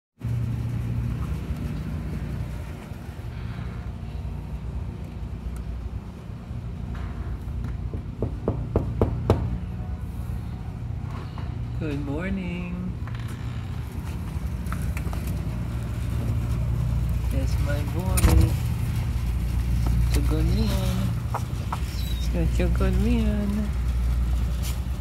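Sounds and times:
low background rumble: 0:00.2 - 0:25.0.

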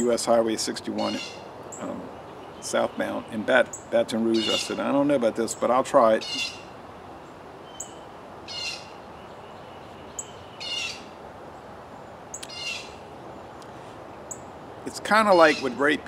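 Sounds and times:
outdoor background hush: 0:00.0 - 0:16.0
songbird singing: 0:00.0 - 0:16.0.

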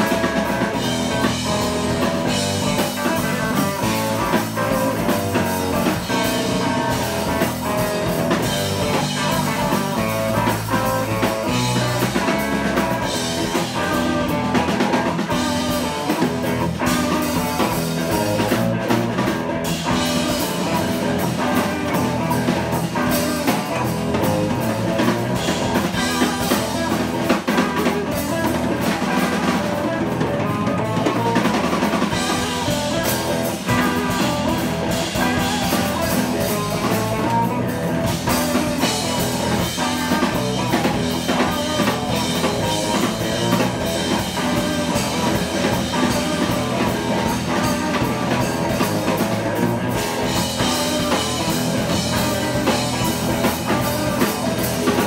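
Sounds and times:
drum kit: 0:00.0 - 0:55.0
electric bass: 0:00.0 - 0:55.0
electric guitar: 0:00.0 - 0:55.0.

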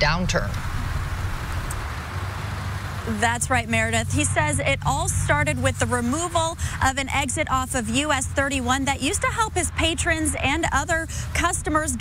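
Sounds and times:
low constant hum: 0:00.0 - 0:12.0
road traffic hiss: 0:00.0 - 0:12.0.

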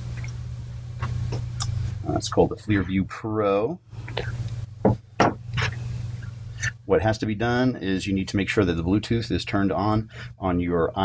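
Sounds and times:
steady low hum: 0:00.0 - 0:11.0
knocks and clicks of handled objects: 0:04.8 - 0:05.7.

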